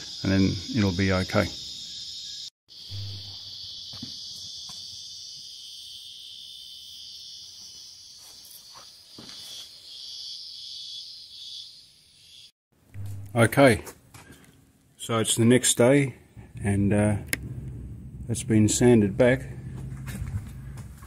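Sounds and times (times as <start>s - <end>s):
shrilling insects chorus: 0.0s - 12.5s.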